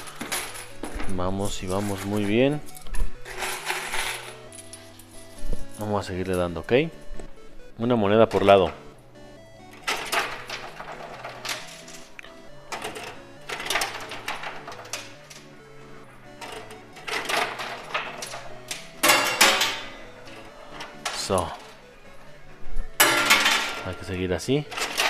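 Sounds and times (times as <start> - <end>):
coins clattering in coin pusher: 0.0 - 6.5, 9.6 - 22.3, 22.9 - 25.0
background music: 0.0 - 25.0.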